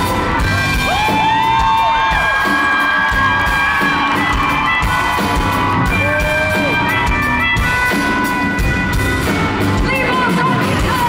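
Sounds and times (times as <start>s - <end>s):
crowd whooping and cheering: 0.0s - 8.9s
live band music: 0.0s - 11.0s
harmonica bending notes: 2.4s - 10.4s.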